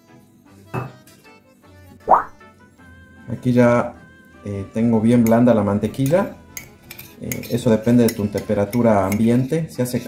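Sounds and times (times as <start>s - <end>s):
quiet background music: 0.0s - 10.0s
spoon knocking metal bowl: 0.7s - 1.0s, 6.0s - 9.3s.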